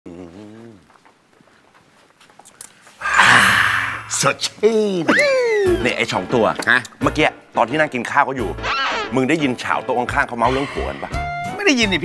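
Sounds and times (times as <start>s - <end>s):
man's falsetto exclamation: 3.0s - 4.2s.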